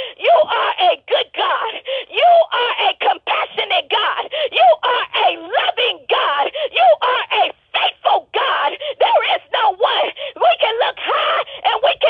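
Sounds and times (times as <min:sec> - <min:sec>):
voice praying over a telephone: 0:00.2 - 0:12.0.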